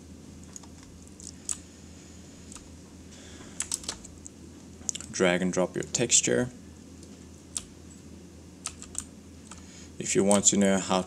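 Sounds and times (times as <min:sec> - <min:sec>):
low electrical hum: 0:00.0 - 0:11.0
computer mouse clicks: 0:03.6 - 0:04.1, 0:08.6 - 0:09.6.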